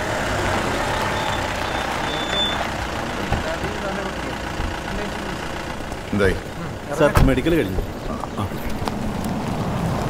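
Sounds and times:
low voices: 0:00.0 - 0:09.2
jeep engine running: 0:00.0 - 0:10.0.

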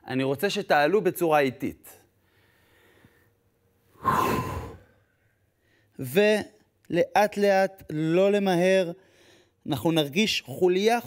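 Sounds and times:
man's breathy sigh: 0:04.0 - 0:05.0.

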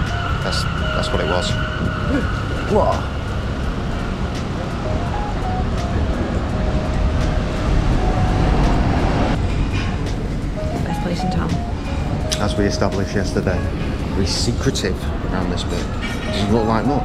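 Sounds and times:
loud low rumble: 0:00.0 - 0:15.3
background music: 0:00.0 - 0:17.0.

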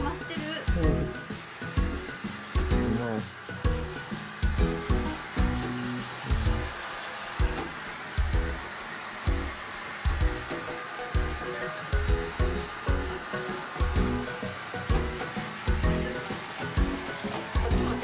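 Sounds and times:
hair dryer blowing: 0:00.0 - 0:18.0
background music with bass beat: 0:12.0 - 0:14.3.

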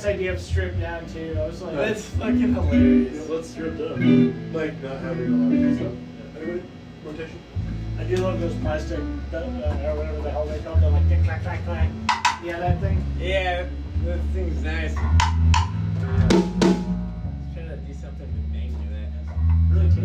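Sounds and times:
long low held notes: 0:00.2 - 0:20.0
guitar plucked and strummed: 0:02.1 - 0:06.8, 0:07.6 - 0:20.0.

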